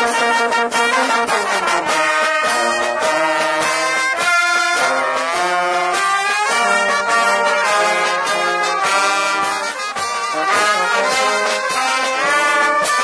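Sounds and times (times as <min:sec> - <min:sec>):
brass band playing: 0:00.0 - 0:13.0
snare drum beat: 0:00.0 - 0:13.0.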